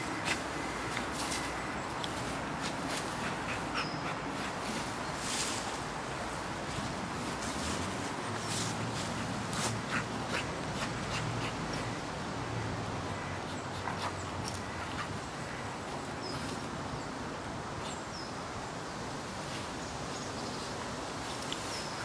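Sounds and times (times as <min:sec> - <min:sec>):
outdoor background hiss: 0:00.0 - 0:22.0.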